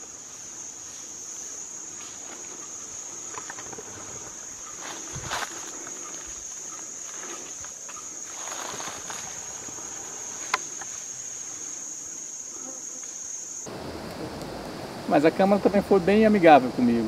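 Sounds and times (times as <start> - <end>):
forest insects chorus: 0.0 - 17.0.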